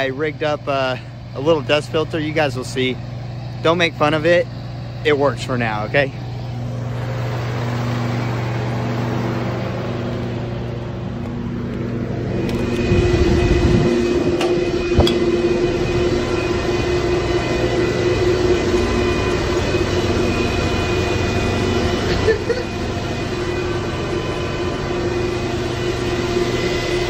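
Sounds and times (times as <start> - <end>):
cooling fans whirring: 0.0 - 27.0
gas generator engine humming: 0.0 - 27.0.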